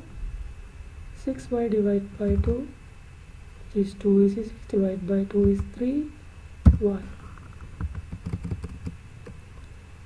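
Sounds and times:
computer keyboard typing: 7.8 - 9.0.

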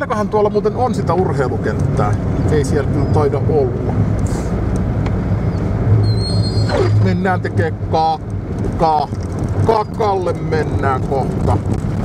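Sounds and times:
road noise: 0.0 - 12.0.

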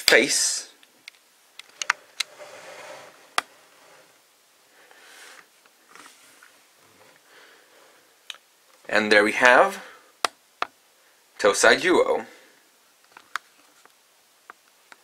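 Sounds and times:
faint rustling: 1.6 - 8.1.

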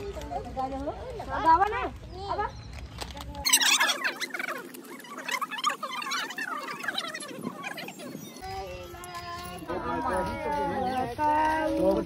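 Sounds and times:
women and children talking: 0.0 - 12.0.

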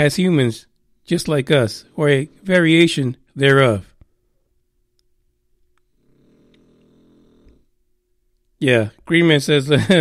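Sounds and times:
pet snoring faintly: 1.5 - 3.0, 5.9 - 7.8.

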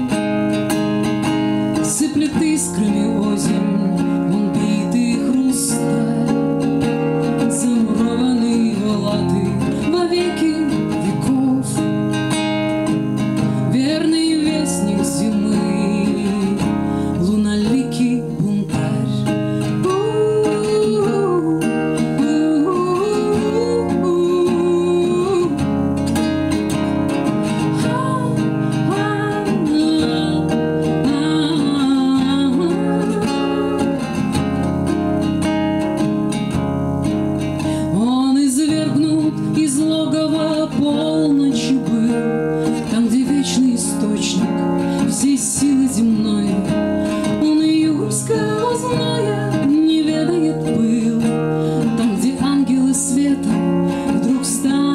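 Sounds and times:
woman singing a slow song: 0.0 - 35.4, 37.4 - 54.9
strummed acoustic guitar: 0.0 - 54.9.

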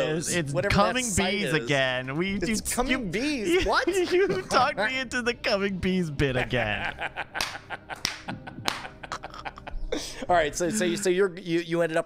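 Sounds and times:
men laughing: 3.4 - 5.1, 6.2 - 11.0
sharp clicks or slaps: 7.4 - 9.0.

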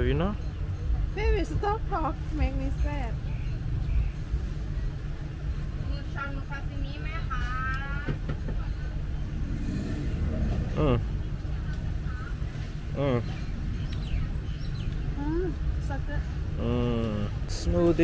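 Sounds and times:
low outdoor rumble: 0.0 - 18.0.

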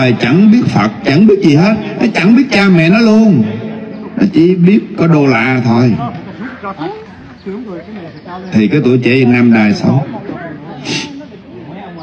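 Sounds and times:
faint background voices: 6.0 - 12.0.

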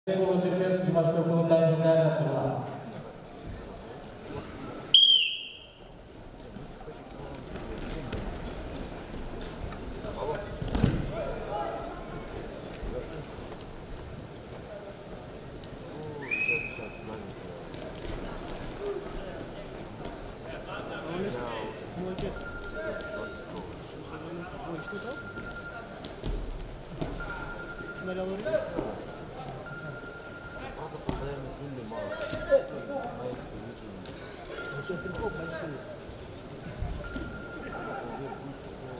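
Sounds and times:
arena background noise: 0.1 - 38.9.

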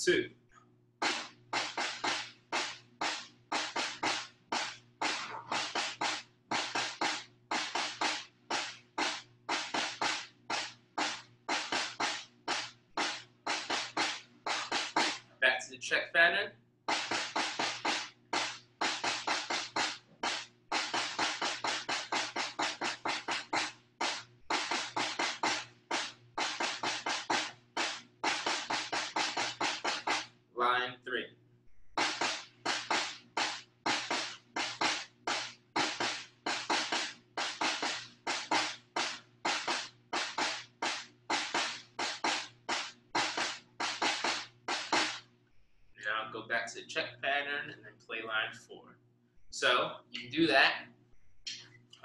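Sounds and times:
person speaking: 0.0 - 0.4, 46.0 - 48.9, 49.5 - 50.8
snare drum played with sticks: 1.0 - 15.3, 16.9 - 30.4, 31.9 - 45.3.

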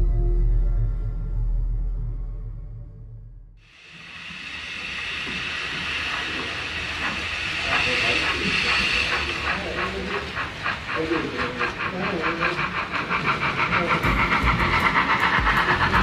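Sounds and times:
model steam locomotive hiss: 3.6 - 16.0
rhythmic steam chuffing: 3.6 - 16.0.

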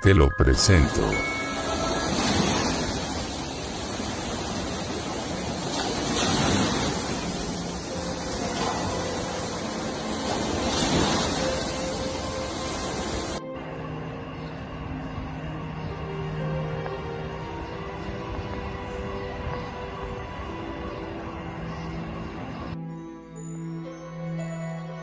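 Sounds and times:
music: 0.0 - 4.9, 5.6 - 25.0
pool water sloshing in waves: 1.3 - 13.4.

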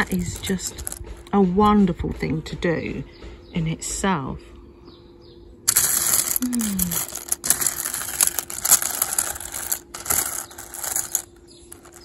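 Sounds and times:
buttons rattling in metal tin: 0.0 - 1.0, 5.7 - 12.0.

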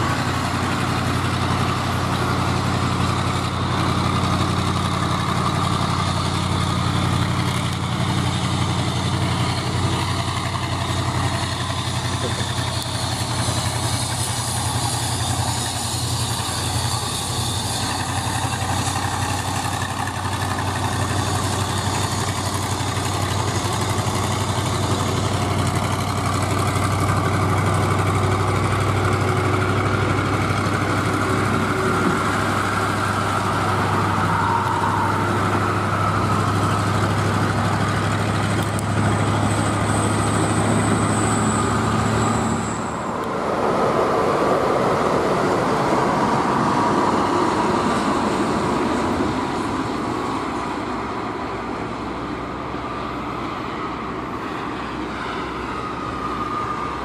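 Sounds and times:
diesel truck engine drone: 0.0 - 57.0
tyre and road noise: 0.0 - 57.0.

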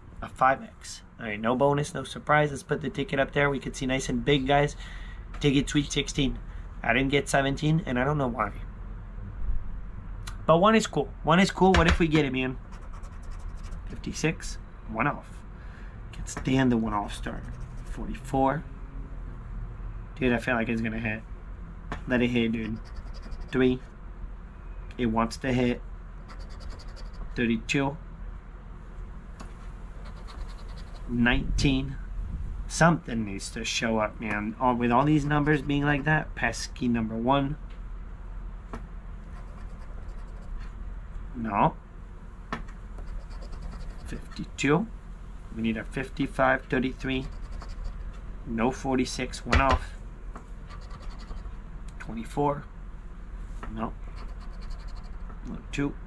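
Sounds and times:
coin scratching a ticket: 12.6 - 14.0, 17.2 - 18.0, 22.6 - 23.7, 26.2 - 27.4, 30.0 - 31.2, 39.3 - 40.6, 43.0 - 44.4, 46.9 - 48.0, 50.7 - 51.5, 54.2 - 55.2
coin scraping scratch-off ticket: 26.3 - 27.3, 30.0 - 31.1, 50.7 - 51.4.

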